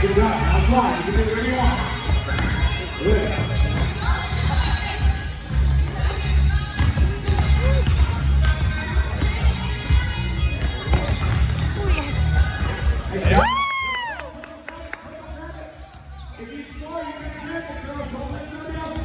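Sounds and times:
sneakers squeaking: 0.0s - 13.4s, 15.0s - 19.0s.

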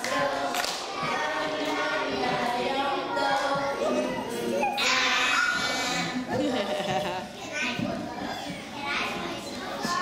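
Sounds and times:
young children chattering: 3.8s - 10.0s.

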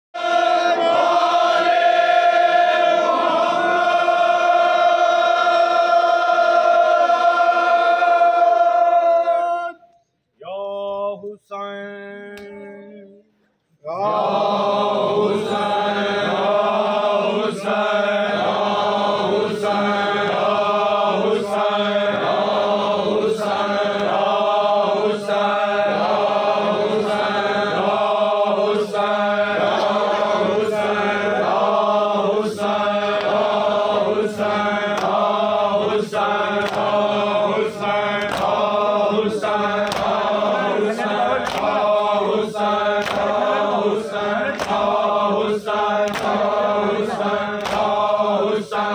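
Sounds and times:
men chanting together: 0.2s - 9.8s, 13.9s - 48.9s
hands slapping chests: 33.1s - 33.5s, 34.9s - 35.3s, 36.5s - 37.1s, 38.1s - 38.8s, 39.4s - 42.0s, 42.8s - 45.1s, 45.7s - 46.6s, 47.5s - 48.2s.

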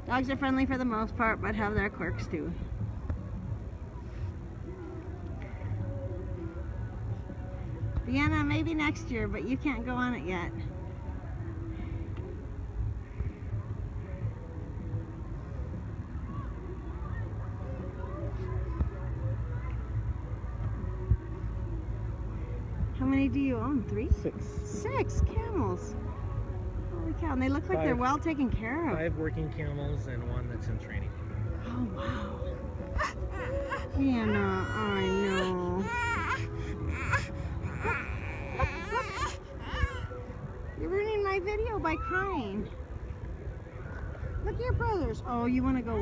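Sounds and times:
faint distant voices: 0.0s - 46.0s
young child crying: 32.1s - 40.2s.

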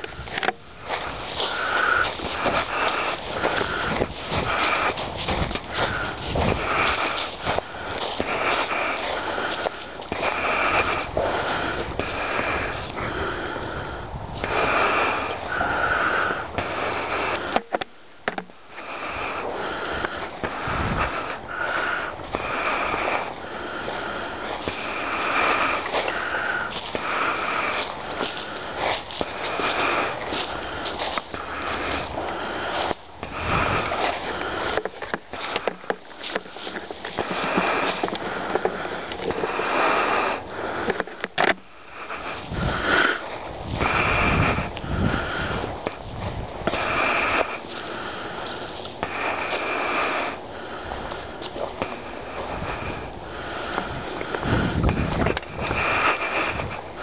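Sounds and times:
footsteps crunching dry leaves: 0.0s - 17.6s, 18.8s - 56.4s.

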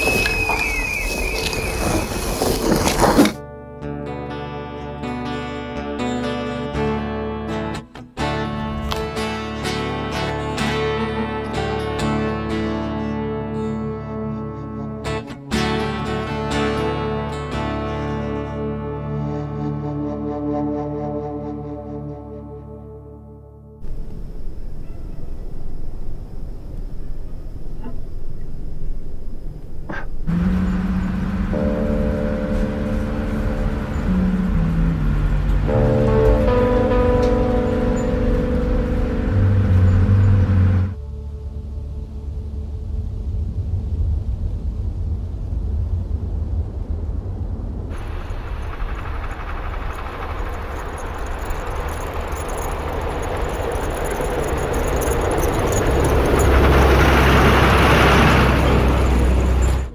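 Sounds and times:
descending bass line: 18.2s - 59.9s
low rumble: 23.8s - 59.9s
rushing noise: 23.8s - 59.9s
sustained orchestral chords: 30.3s - 42.8s.

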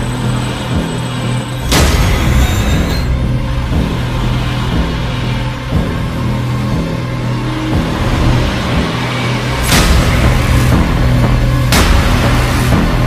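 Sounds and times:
dark droning trailer music: 0.0s - 13.0s.

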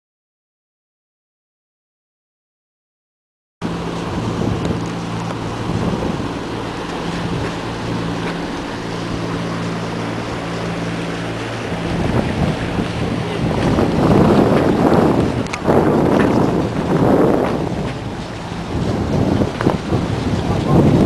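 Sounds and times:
boat engine humming: 3.6s - 21.0s
water rushing past boat: 3.6s - 21.0s
wind buffeting microphone: 3.6s - 21.0s.

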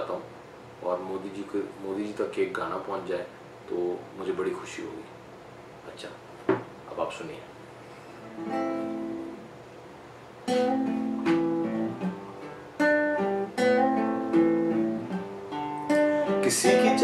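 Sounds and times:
classical guitar strummed chords: 8.2s - 9.4s, 10.4s - 17.0s.

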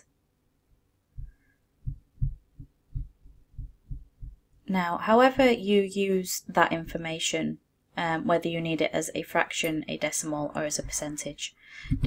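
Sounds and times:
low muffled thumps: 1.2s - 4.5s.

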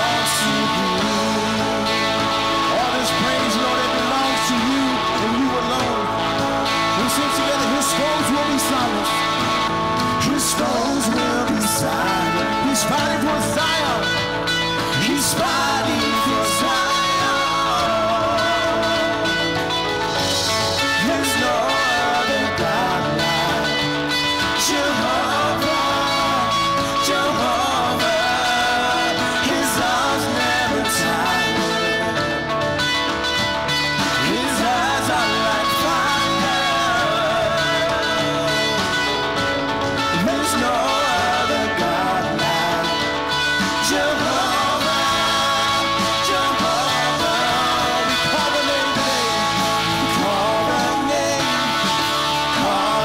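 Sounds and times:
person singing: 0.0s - 53.0s
worship band playing: 0.0s - 53.0s.

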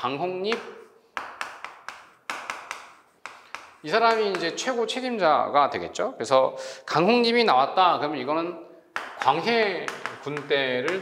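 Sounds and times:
chalk tapping and scraping on board: 0.4s - 5.0s, 8.9s - 11.0s.

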